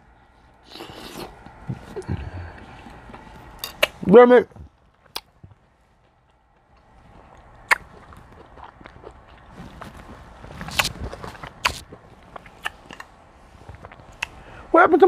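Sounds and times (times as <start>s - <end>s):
person chewing: 0.4s - 4.0s, 4.8s - 14.6s
lip smacks: 5.0s - 5.4s, 6.2s - 13.1s, 13.7s - 14.4s.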